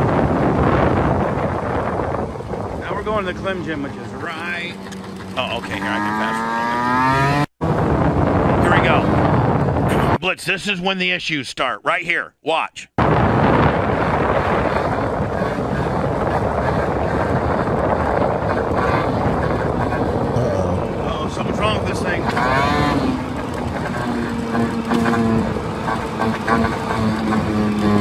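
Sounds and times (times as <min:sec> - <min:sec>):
wind rush on microphone: 0:00.0 - 0:10.3, 0:13.0 - 0:28.0
moped engine running: 0:02.8 - 0:07.4, 0:13.9 - 0:28.0.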